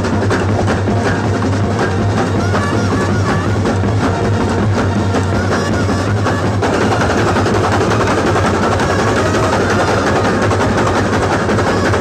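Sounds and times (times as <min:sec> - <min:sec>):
drums playing rapid roll: 0:00.0 - 0:12.0.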